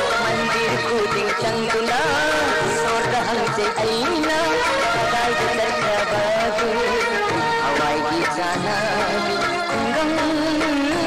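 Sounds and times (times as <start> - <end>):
old song playing: 0.0 - 11.0.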